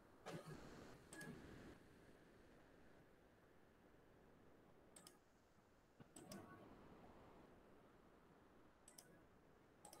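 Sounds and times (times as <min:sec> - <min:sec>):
faint clicks: 0:08.9 - 0:09.2.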